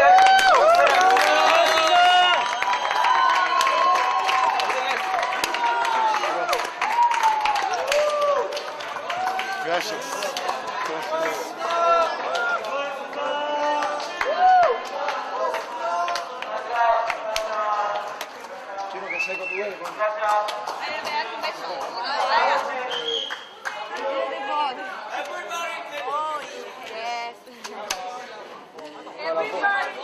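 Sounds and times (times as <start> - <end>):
crowd chatter: 0.0 - 30.0.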